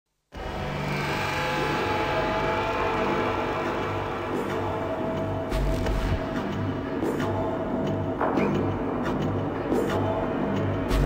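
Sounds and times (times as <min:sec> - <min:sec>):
electronic drone with low rumble: 0:00.4 - 0:11.0.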